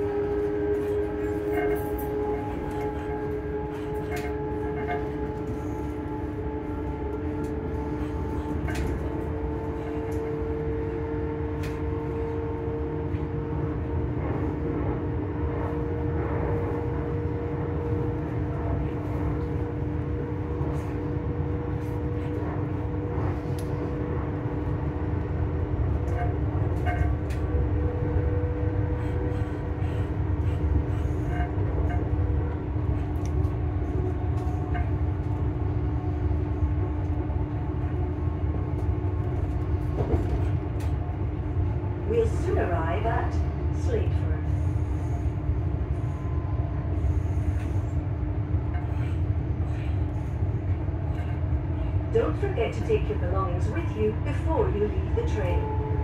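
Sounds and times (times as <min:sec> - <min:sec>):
train running gear hum: 0:00.0 - 0:56.0
train wheels rumbling on track: 0:00.0 - 0:56.0.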